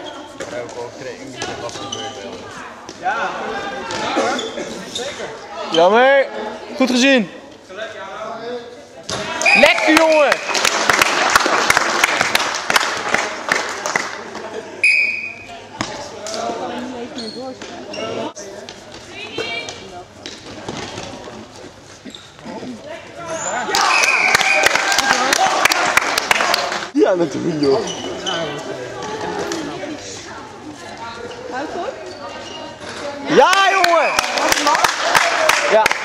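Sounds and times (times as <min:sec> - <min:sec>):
sneakers squeaking on floor: 0:01.4 - 0:02.4, 0:03.9 - 0:05.4, 0:17.1 - 0:21.3, 0:21.9 - 0:22.6, 0:27.4 - 0:29.7, 0:31.2 - 0:33.1.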